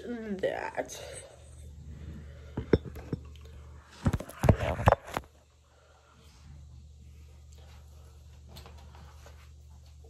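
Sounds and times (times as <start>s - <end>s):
hard objects knocking and clinking: 2.5s - 3.3s.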